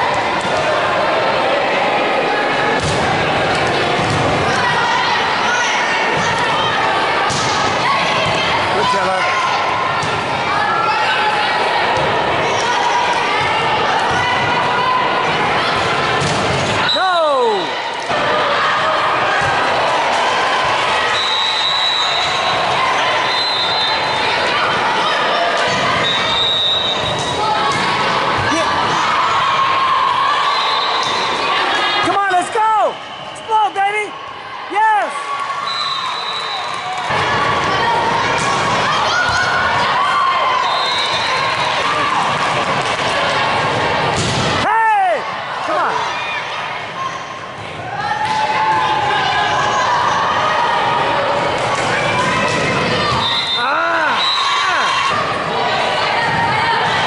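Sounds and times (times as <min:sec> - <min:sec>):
volleyball being hit: 0:02.8 - 0:03.2.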